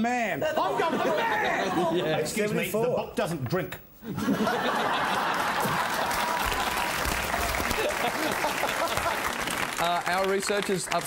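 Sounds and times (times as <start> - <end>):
audience laughter: 0.5 - 2.2, 4.1 - 9.4
audience applauding: 4.8 - 11.0.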